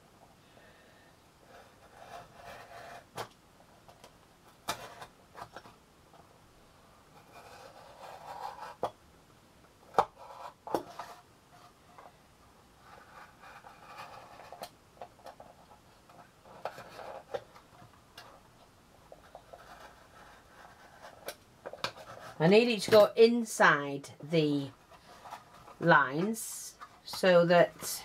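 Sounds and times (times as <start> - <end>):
cardboard rubbing and scraping: 1.6 - 3.2, 7.2 - 8.9, 19.2 - 21.3.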